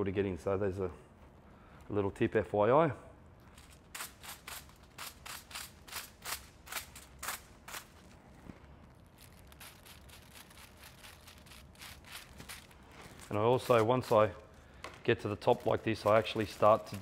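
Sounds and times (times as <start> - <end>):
brush strokes on hair and foil: 4.0 - 14.6, 15.2 - 17.0.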